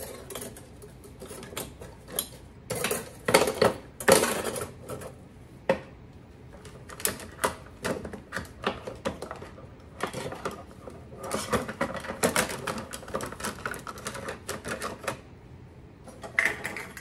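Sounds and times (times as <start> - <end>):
kitchen utensils clattering: 0.0 - 5.2.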